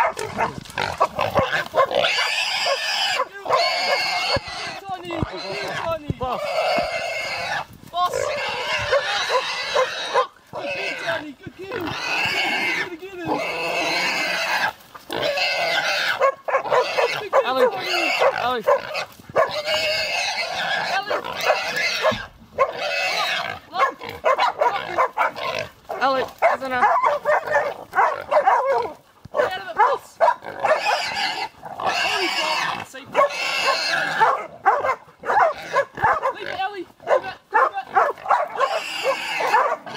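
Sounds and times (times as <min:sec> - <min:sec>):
pig squealing loudly: 0:00.0 - 0:39.9.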